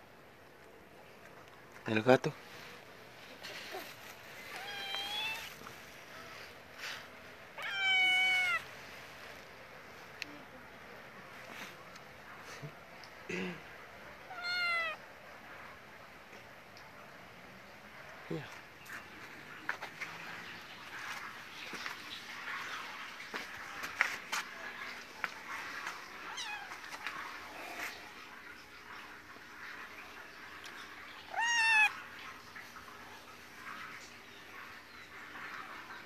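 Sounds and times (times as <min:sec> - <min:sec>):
cat meowing: 0:04.5 - 0:05.6, 0:07.6 - 0:08.7, 0:14.2 - 0:15.0, 0:26.3 - 0:26.8, 0:31.3 - 0:32.0.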